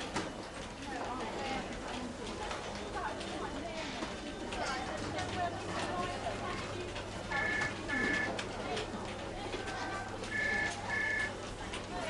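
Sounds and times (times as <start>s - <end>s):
desk telephone ringing: 7.3s - 8.3s, 10.3s - 11.3s.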